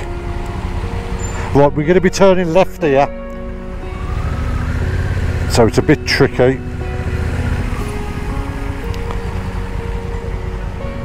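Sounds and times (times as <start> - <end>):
background music held notes: 0.0 - 11.0
road and wind noise: 0.0 - 11.0
motorcycle engine running: 3.9 - 11.0.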